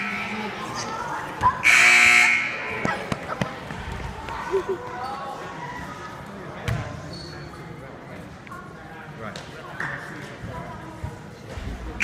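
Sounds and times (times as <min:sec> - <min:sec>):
voices murmuring: 0:00.0 - 0:12.0
scoreboard buzzer: 0:01.6 - 0:02.7.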